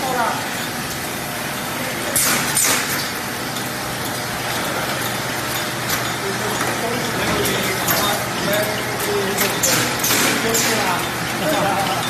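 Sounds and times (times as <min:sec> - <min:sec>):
packaging machine running: 0:00.0 - 0:12.0.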